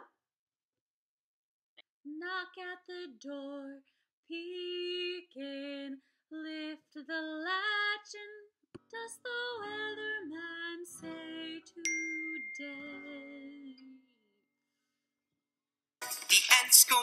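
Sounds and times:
woman singing children's song: 2.1 - 14.1
acoustic guitar: 16.0 - 17.0.

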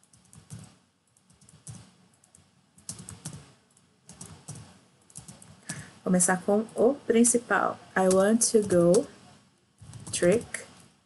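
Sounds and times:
keyboard keys clicking: 0.0 - 5.8, 8.0 - 9.1, 9.8 - 10.9.

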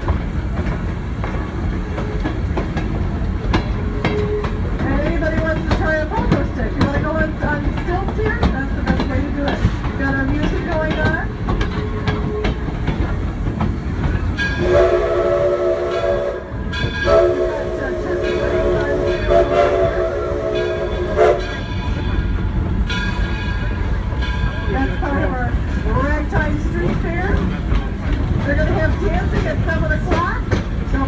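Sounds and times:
low rumble of moving train: 0.0 - 31.0
steam locomotive whistle blasts: 14.5 - 21.6.

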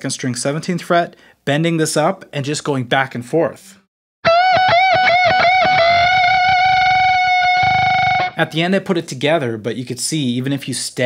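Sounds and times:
distorted electric guitar bends: 4.2 - 8.4.

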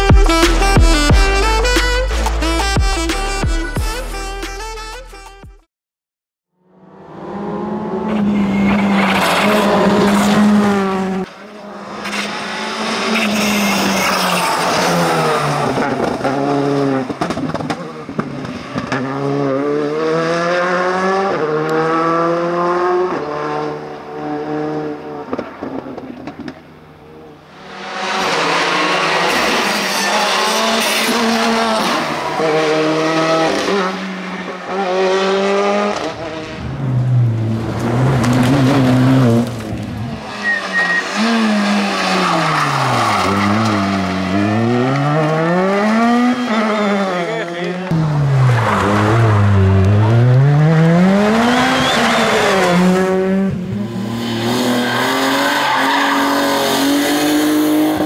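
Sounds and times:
rally car engines revving: 6.7 - 58.0.

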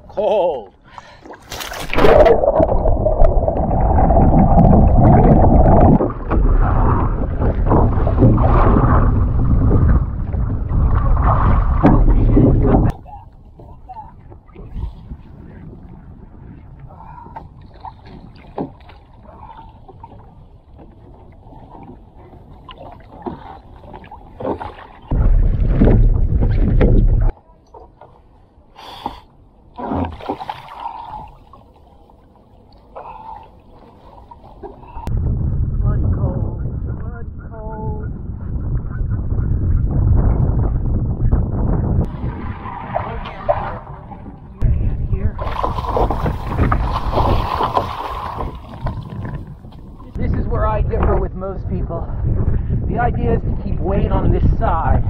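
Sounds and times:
water sloshing against hull: 0.7 - 35.1, 40.4 - 52.8
low rumbling on microphone: 1.9 - 23.0, 25.0 - 27.4, 34.8 - 55.0.

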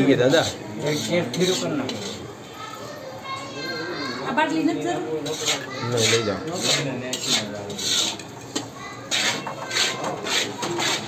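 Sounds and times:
metal spatula scraping a pan: 0.0 - 2.3, 5.1 - 11.0.

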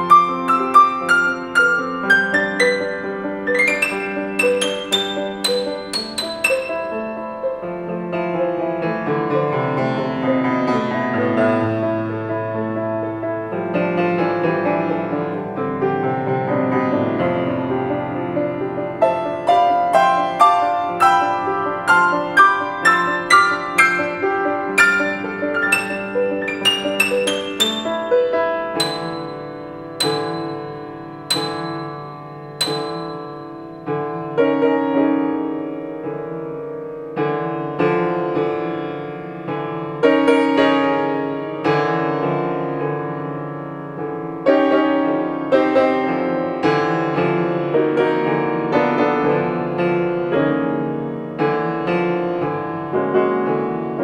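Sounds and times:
grand piano playing: 0.0 - 54.0.

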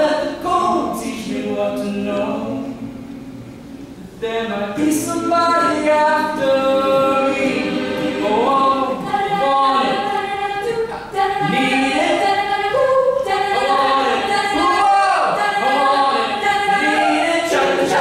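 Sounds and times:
sustained vocal harmonies: 0.0 - 18.0.

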